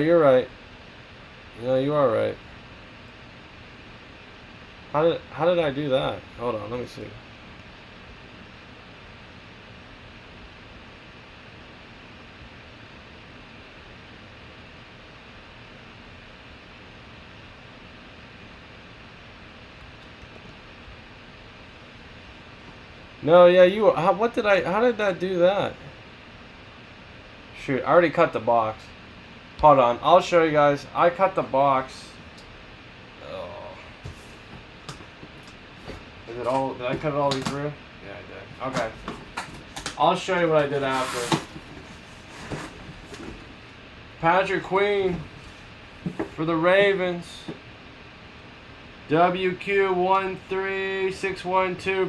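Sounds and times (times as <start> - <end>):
background hiss: 21.4 - 48.2.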